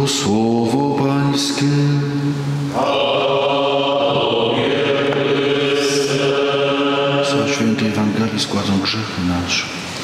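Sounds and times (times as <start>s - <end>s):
men chanting with held notes: 2.7s - 8.2s.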